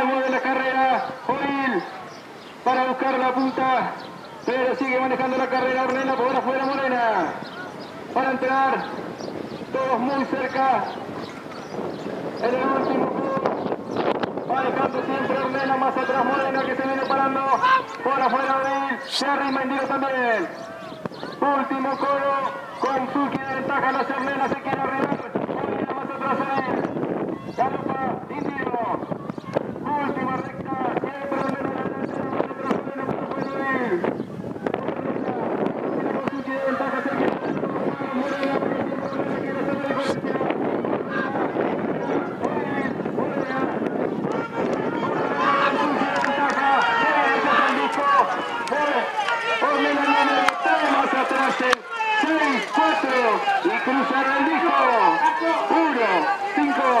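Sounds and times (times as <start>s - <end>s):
race commentator speaking fast: 0.0s - 9.0s, 9.7s - 11.2s, 12.4s - 13.7s, 14.4s - 29.2s, 29.8s - 57.0s
people shouting: 14.6s - 24.5s, 36.3s - 57.0s.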